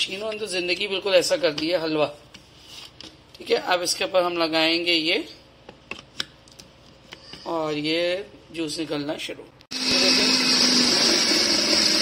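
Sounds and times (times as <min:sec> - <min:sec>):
citrus juicer motor whirring: 0:09.7 - 0:12.0.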